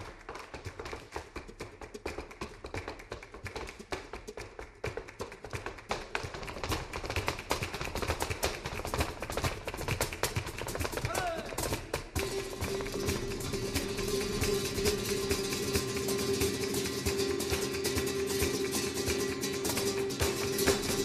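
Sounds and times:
boots striking stage floor: 0.0 - 21.0
short vocal call: 11.1 - 11.6.

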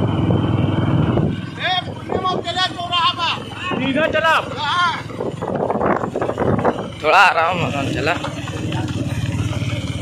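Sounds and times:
small motorcycle engines running: 0.0 - 10.0.

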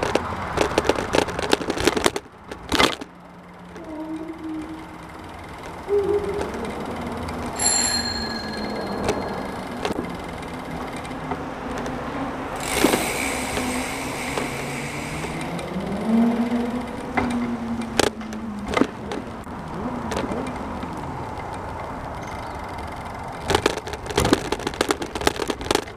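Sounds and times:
road traffic rumble: 0.0 - 25.9
short metallic ring: 7.6 - 9.9.

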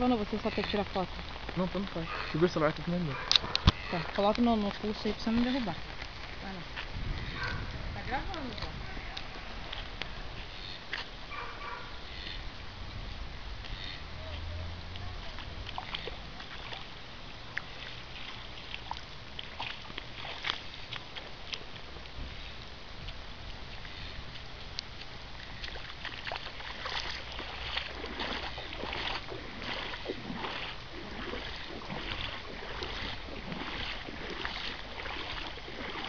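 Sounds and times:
floodwater sloshing and splashing: 0.0 - 36.0.

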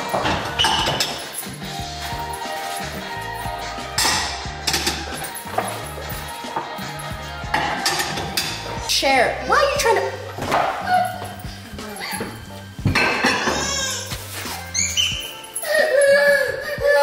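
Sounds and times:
dinner plates clinking: 0.0 - 3.1, 7.5 - 8.8, 10.2 - 15.8
background music with steady beat: 0.0 - 17.0.

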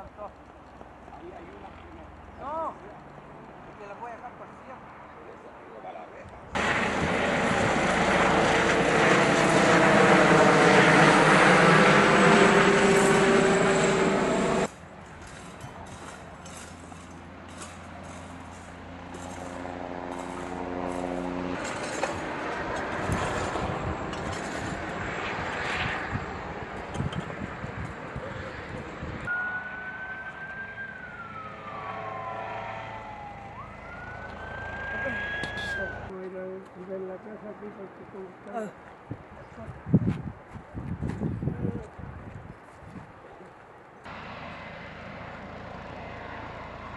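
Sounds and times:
steady outdoor hum: 0.0 - 46.9
aircraft passing low overhead: 6.4 - 36.2, 43.9 - 46.9
high whistling tone: 29.3 - 32.4.

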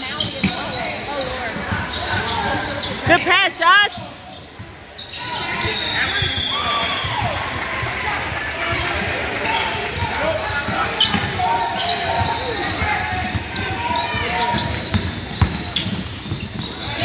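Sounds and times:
voices in a hall: 0.0 - 17.0.

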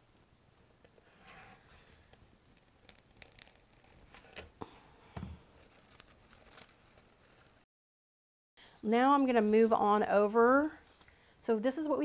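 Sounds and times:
artificial flowers rustling: 1.0 - 7.7.

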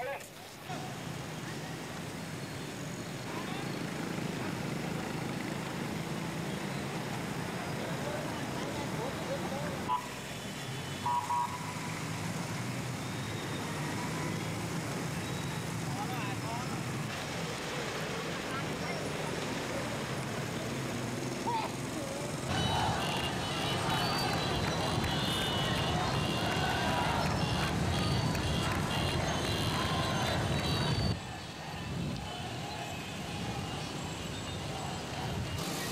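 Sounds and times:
motorbike and vehicle traffic: 0.0 - 35.9
indistinct crowd voices: 15.6 - 35.9.

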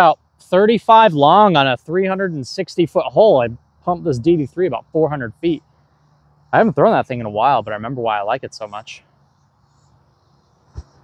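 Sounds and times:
faint insect chirping: 0.0 - 11.0
short thump: 10.7 - 11.0.

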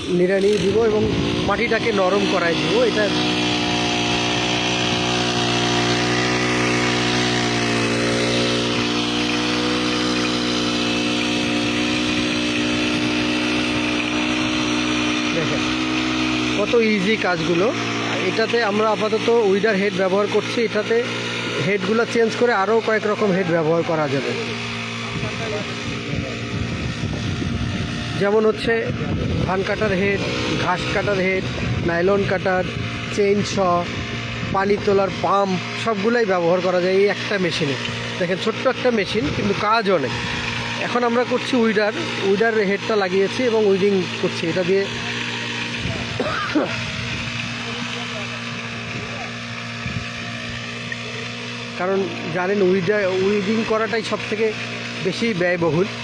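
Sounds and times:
brush cutter engine running: 0.0 - 56.0
weeder head churning soil: 0.0 - 56.0.

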